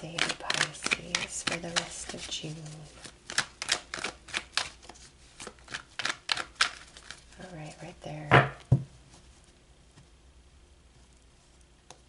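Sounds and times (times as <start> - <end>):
cards being shuffled: 0.0 - 7.8.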